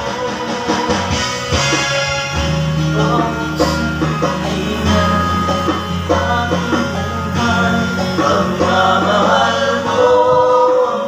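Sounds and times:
backing music: 0.0s - 11.0s
man singing into a microphone: 2.8s - 11.0s.

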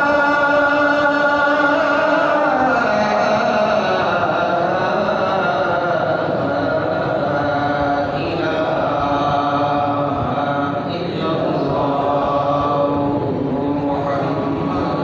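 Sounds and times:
person chanting devotional recitation: 0.0s - 15.0s.

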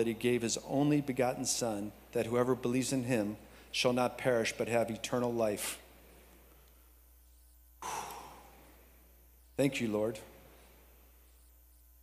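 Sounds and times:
man sighing: 7.8s - 8.6s.

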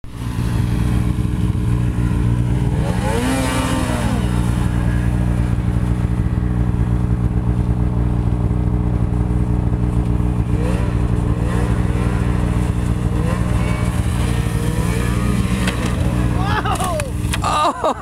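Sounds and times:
snowmobile engine revving: 0.0s - 18.0s.

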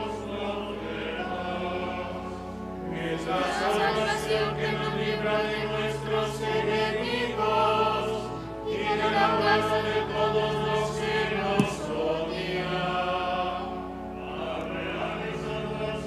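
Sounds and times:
choir singing sacred music: 0.0s - 16.0s.

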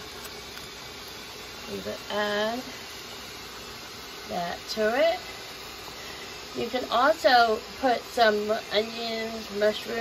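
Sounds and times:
pan juices hissing: 0.0s - 10.0s.

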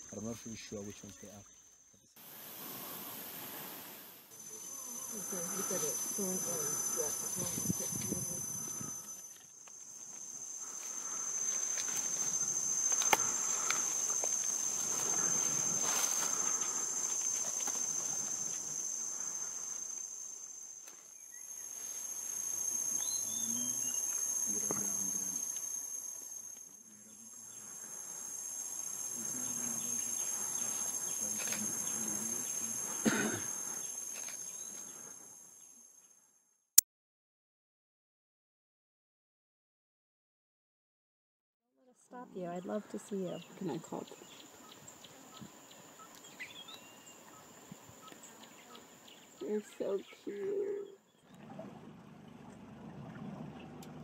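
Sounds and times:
insects chirping: 0.0s - 36.5s, 42.0s - 54.0s.

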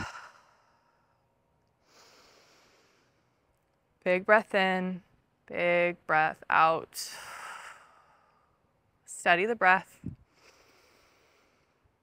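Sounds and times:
soft human breathing: 1.8s - 3.5s, 10.1s - 12.0s.

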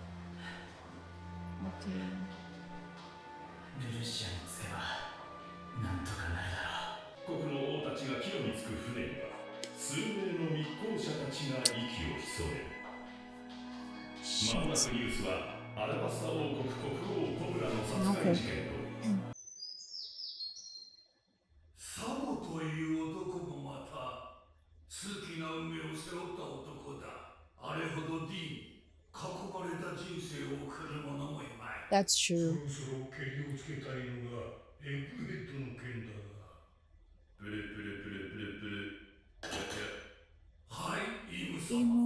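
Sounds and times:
narration: 3.8s - 13.1s, 14.0s - 19.4s, 29.2s - 36.4s, 40.8s - 42.0s
person speaking: 11.5s - 12.7s, 14.3s - 15.3s, 16.8s - 19.4s, 31.9s - 32.7s, 41.4s - 42.0s
faint high bird chirps: 19.4s - 21.2s.

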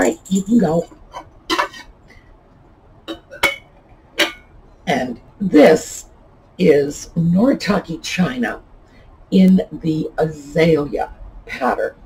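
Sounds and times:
china dishes clinking: 0.0s - 1.9s, 3.1s - 4.5s.

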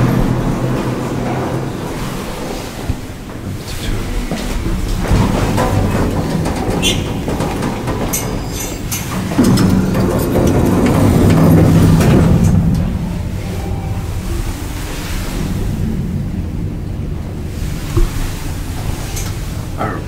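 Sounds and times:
elevator rumble and hum: 0.0s - 20.0s.

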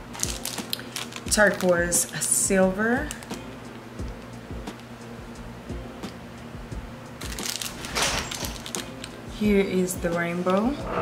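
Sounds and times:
plastic bag crinkling: 0.2s - 2.3s, 7.2s - 9.2s.

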